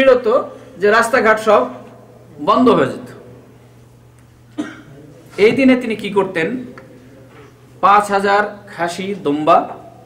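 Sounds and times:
low steady hum: 0.0s - 10.0s
man talking: 2.4s - 3.3s, 5.0s - 6.8s
man coughing: 4.5s - 5.0s.

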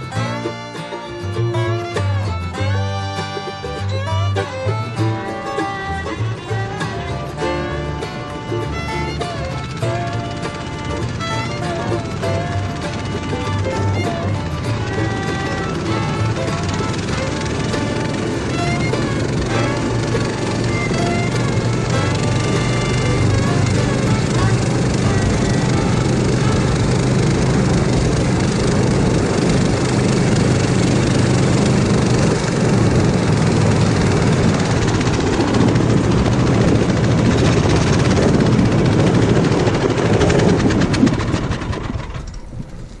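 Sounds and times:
sled rumbling over snow: 0.0s - 43.0s
snow tow engine running: 0.0s - 43.0s.

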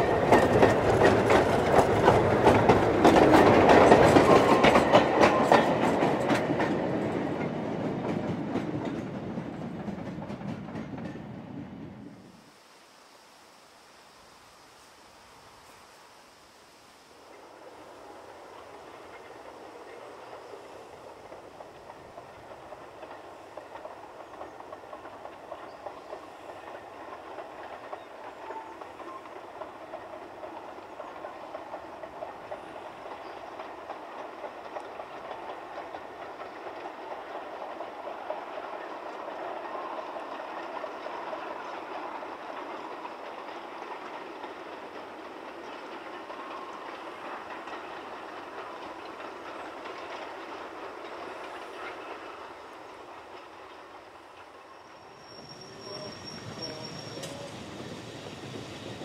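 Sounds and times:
train wheels clattering on rails: 0.0s - 12.4s, 17.3s - 59.0s.

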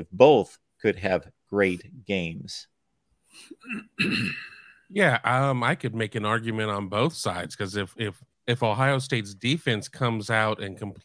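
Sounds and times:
man clearing his throat: 3.6s - 4.7s.

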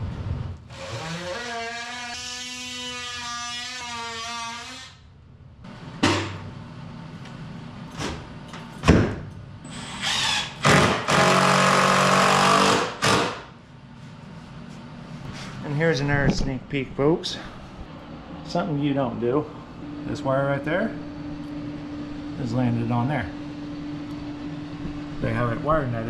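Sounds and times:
power drill driving screws: 9.7s - 13.4s.

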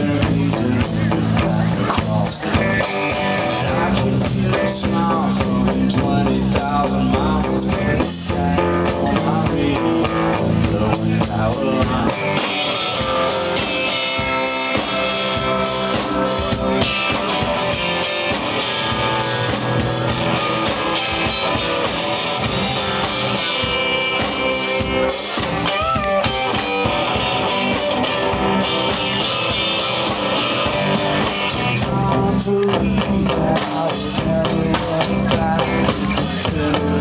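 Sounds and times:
drum kit: 0.0s - 37.0s
electric guitar: 0.0s - 37.0s.

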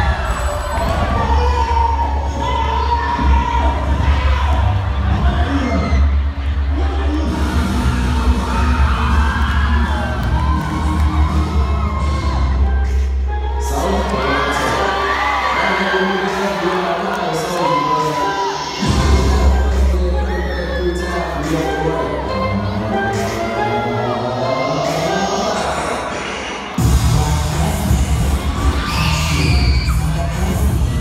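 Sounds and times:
crowd shouting and cheering: 0.0s - 31.0s
dance music with heavy bass: 18.4s - 31.0s.

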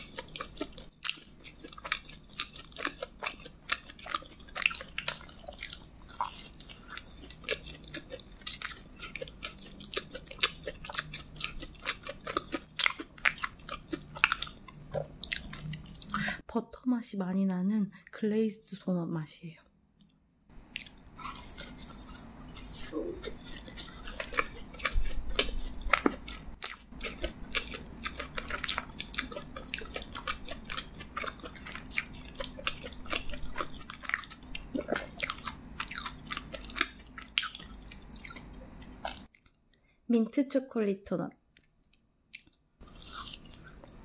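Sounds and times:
chewing doughnut: 0.0s - 16.4s, 20.4s - 39.6s, 41.6s - 44.0s.

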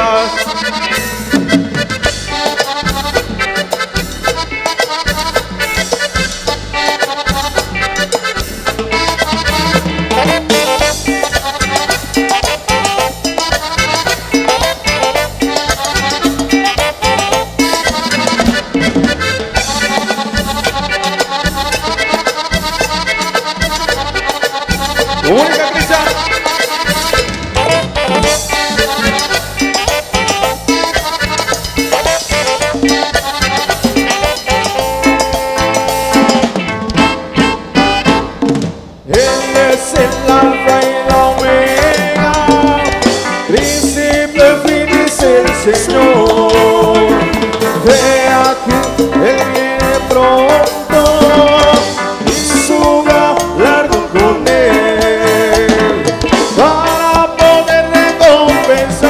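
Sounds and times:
gliding melodic lead line: 0.0s - 59.0s
live cumbia band music: 0.0s - 59.0s
steady percussion: 0.0s - 59.0s.

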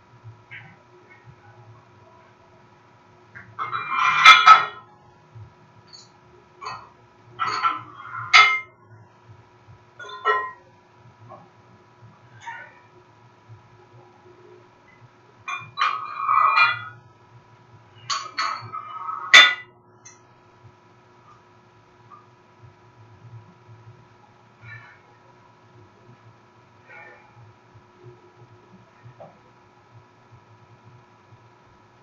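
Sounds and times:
iron weight plates clanging: 3.4s - 4.8s, 6.6s - 8.7s, 10.0s - 10.7s, 18.0s - 19.7s.

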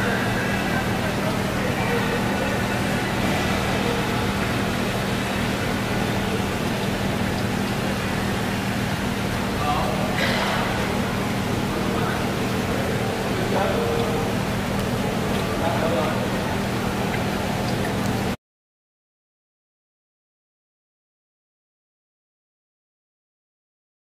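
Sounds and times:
fish splashing and churning water: 0.0s - 18.4s
steady low hum: 0.0s - 18.4s.

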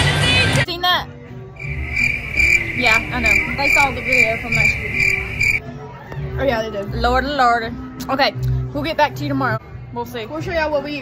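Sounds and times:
faint voices: 1.6s - 5.6s
insects pulsing chirp: 1.6s - 5.6s.

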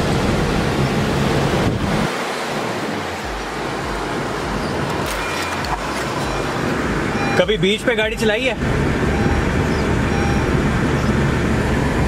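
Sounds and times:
car driving on sand: 0.0s - 12.0s.

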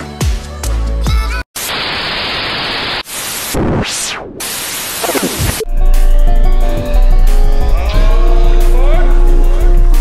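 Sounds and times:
music: 0.0s - 1.4s, 5.6s - 10.0s
static hiss: 1.6s - 5.6s.

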